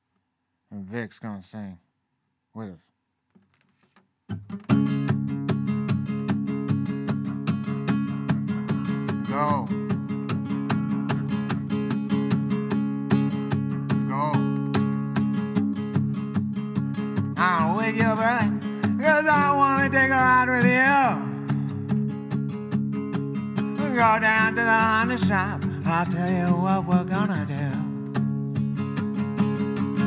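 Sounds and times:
acoustic guitar strumming: 3.4s - 30.0s
person singing: 9.3s - 9.8s, 14.1s - 14.5s, 17.4s - 21.8s, 23.6s - 28.1s.

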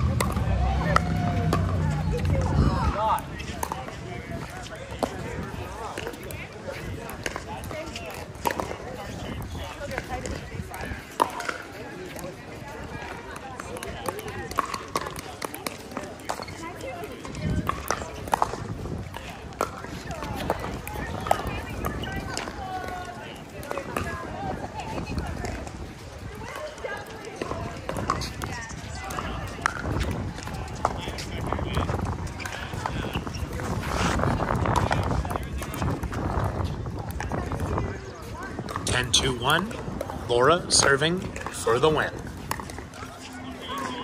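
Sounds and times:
ball bouncing on hard court: 0.0s - 6.4s, 13.3s - 23.0s
voices chattering: 0.0s - 44.0s.

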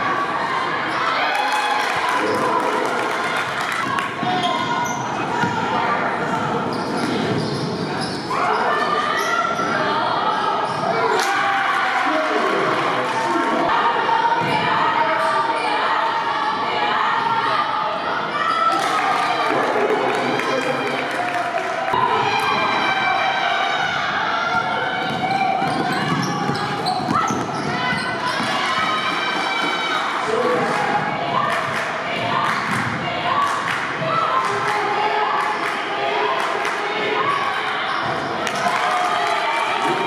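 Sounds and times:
indistinct echoing voices: 0.0s - 40.0s.

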